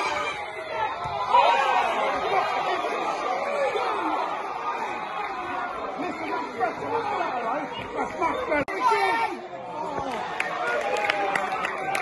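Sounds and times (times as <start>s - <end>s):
football crowd shouting: 0.0s - 12.0s.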